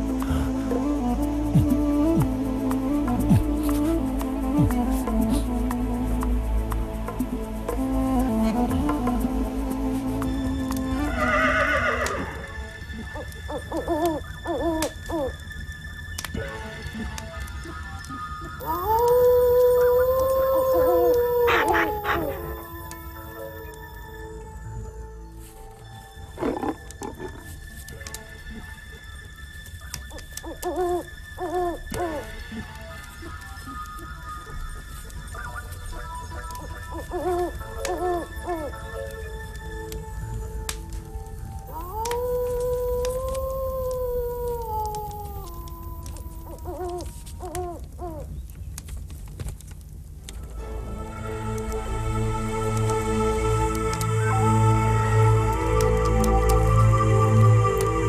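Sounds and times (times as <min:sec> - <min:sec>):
owl hooting: 0:13.0 - 0:15.5, 0:17.6 - 0:24.4, 0:29.8 - 0:40.6, 0:41.7 - 0:48.4
wolf howling: 0:18.6 - 0:24.4, 0:30.0 - 0:34.6, 0:36.5 - 0:39.4, 0:41.6 - 0:48.3.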